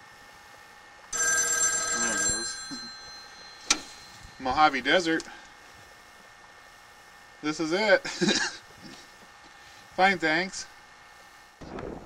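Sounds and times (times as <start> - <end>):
payphone bell ringing: 1.1 - 5.2.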